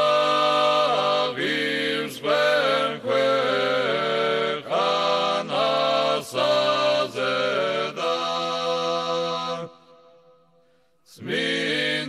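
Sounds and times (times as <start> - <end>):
choir chanting: 0.0 - 10.1, 11.1 - 12.0.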